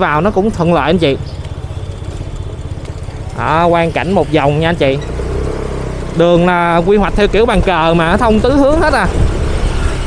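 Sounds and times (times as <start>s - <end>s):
light road noise: 0.0s - 10.0s
small motorbike engine running: 0.2s - 10.0s.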